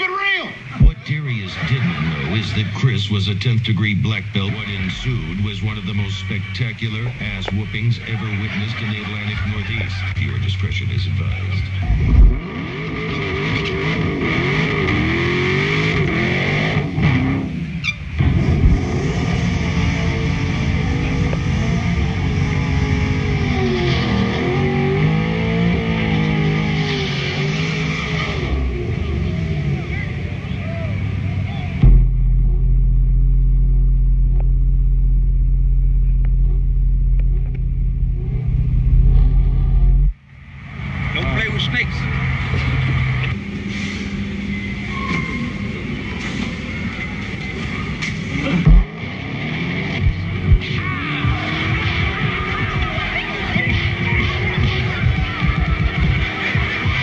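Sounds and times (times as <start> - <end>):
car engines idling and revving: 0.0 - 57.0
background voices: 0.5 - 12.4
deep drone: 0.6 - 57.0.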